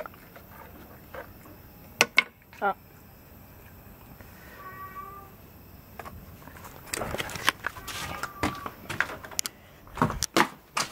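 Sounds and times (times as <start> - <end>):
faint drawn-out cry: 4.4 - 5.5, 7.7 - 8.8
cat meowing: 4.5 - 5.4, 7.7 - 8.8.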